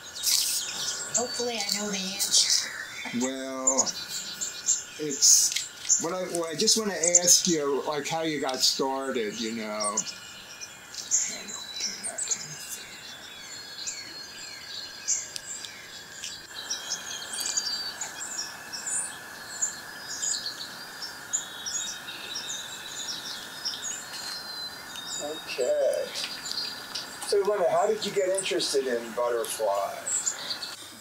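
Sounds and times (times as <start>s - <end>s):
songbirds chirping: 0.0s - 31.0s
steady background noise: 0.0s - 31.0s.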